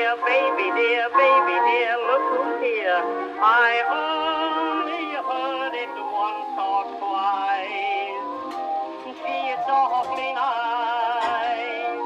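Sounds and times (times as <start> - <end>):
tinny old phonograph song: 0.0 - 12.0.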